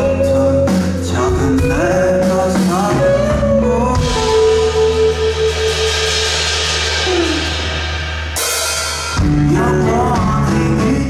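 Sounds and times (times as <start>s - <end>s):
live rock band playing: 0.0s - 11.0s
bright cymbal wash: 4.4s - 9.2s.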